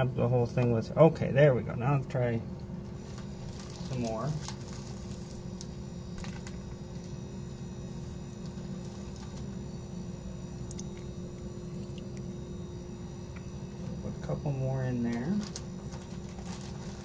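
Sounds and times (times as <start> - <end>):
faint steady tone: 0.0 - 17.0
low background hum: 0.0 - 17.0.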